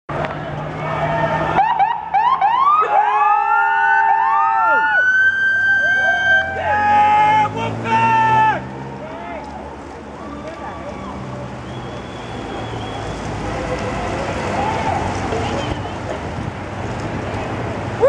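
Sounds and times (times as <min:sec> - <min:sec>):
police sirens whooping: 0:00.6 - 0:16.4
voices: 0:05.8 - 0:17.6.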